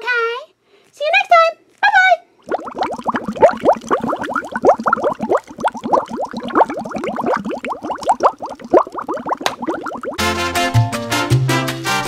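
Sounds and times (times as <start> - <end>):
cartoon bubbling bloops: 2.4 - 10.2.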